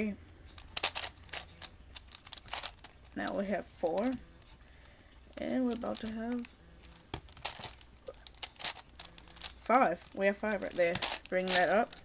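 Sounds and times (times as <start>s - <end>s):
puzzle cube clicking: 0.5s - 4.2s, 5.3s - 12.0s.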